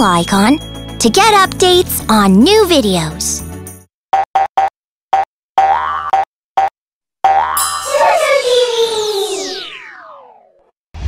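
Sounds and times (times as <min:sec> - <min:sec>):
bouncy pitched blips: 0:04.2 - 0:08.2
shimmering downward sweep: 0:07.8 - 0:10.6.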